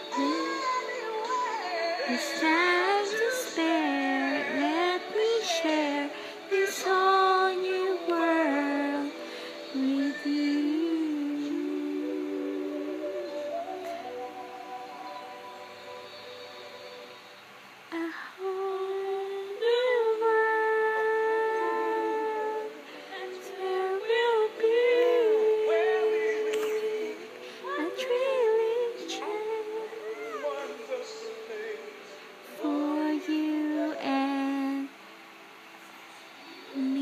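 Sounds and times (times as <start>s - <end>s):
person humming: 0.0s - 9.0s, 18.0s - 22.8s, 23.6s - 31.6s.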